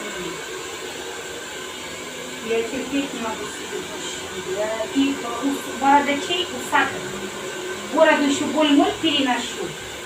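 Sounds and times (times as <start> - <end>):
hair dryer blowing: 0.0 - 10.0.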